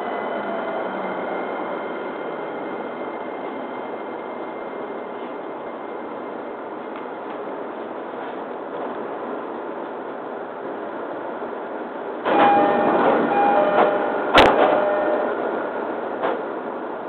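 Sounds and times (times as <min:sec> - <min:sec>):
stopped train hum: 0:00.0 - 0:17.0
two-note train door chime: 0:12.3 - 0:15.5.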